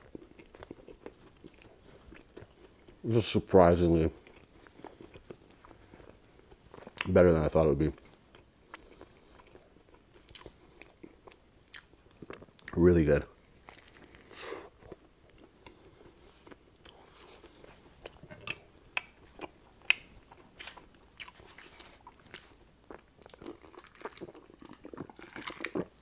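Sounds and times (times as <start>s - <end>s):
chewing with wet mouth clicks: 0.0s - 3.0s, 4.2s - 7.2s, 8.0s - 12.8s, 13.6s - 26.0s.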